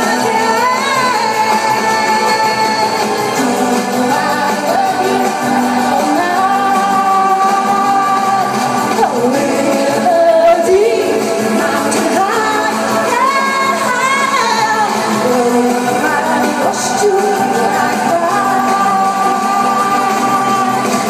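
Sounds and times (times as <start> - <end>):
accompanying music: 0.0 - 21.0
woman singing into microphone: 0.0 - 21.0.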